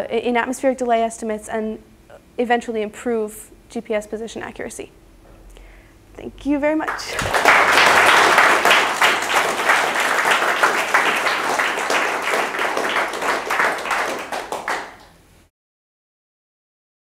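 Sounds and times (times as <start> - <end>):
audience applauding: 6.9 - 15.2.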